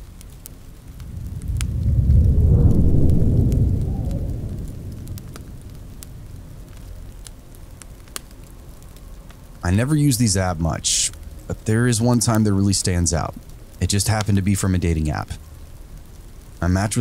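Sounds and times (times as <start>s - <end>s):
fire crackling: 0.0s - 17.0s
deep rumble: 0.6s - 8.9s.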